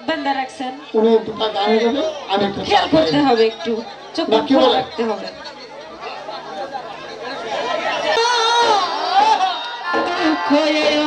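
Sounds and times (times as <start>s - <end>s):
murmur of chatter: 0.0s - 11.0s.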